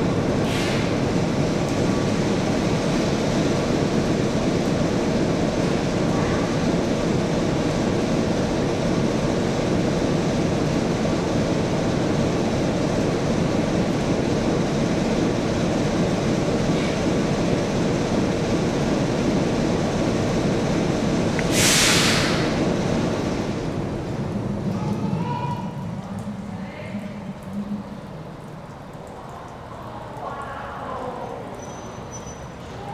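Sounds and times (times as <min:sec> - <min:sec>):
diesel train engines rumbling: 0:00.0 - 0:32.9.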